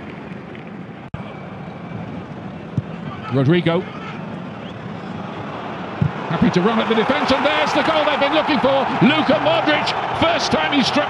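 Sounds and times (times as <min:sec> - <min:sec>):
stadium crowd noise: 0:00.1 - 0:11.0.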